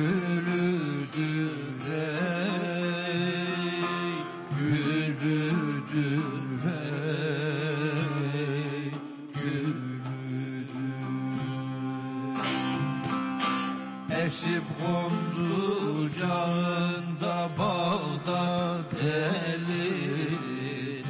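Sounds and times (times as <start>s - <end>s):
plucked and strummed lute strings: 0.0s - 21.0s.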